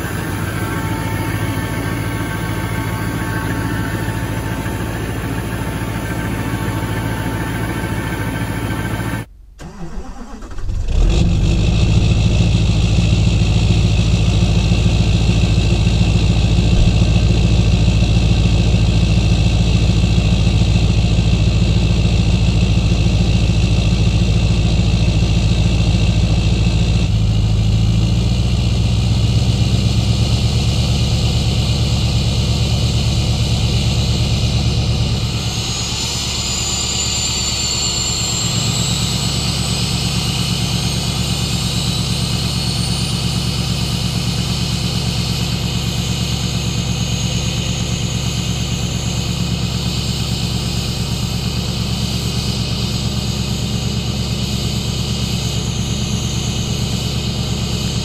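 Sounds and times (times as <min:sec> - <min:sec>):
diesel engine running: 0:00.0 - 0:58.0.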